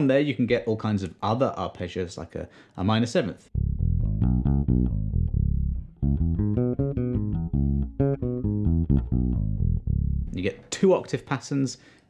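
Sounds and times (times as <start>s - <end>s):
electric bass plucked arpeggio: 3.5s - 10.5s.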